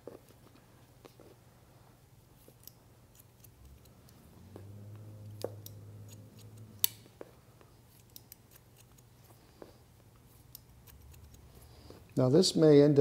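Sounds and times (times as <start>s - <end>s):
low steady hum: 0.0s - 13.0s
shears snipping hair: 2.4s - 7.2s, 7.8s - 12.2s.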